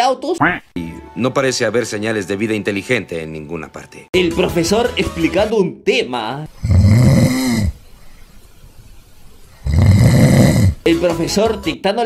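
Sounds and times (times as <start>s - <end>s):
person snoring loudly: 6.5s - 7.8s, 9.6s - 10.9s.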